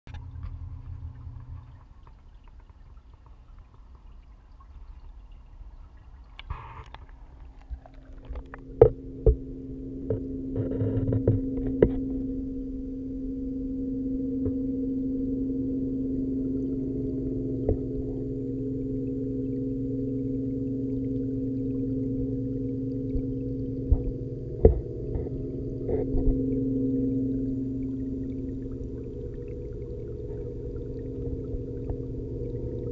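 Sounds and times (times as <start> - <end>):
aquarium pump hum underwater: 0.1 - 32.9.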